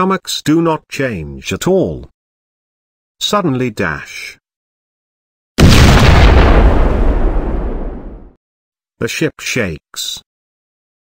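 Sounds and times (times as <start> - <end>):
heavy rumbling boom: 5.6 - 8.4.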